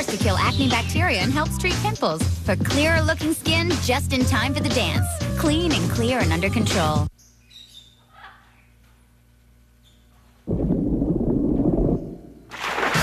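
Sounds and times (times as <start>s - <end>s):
faint bird chirps: 7.2s - 8.9s, 9.8s - 10.3s.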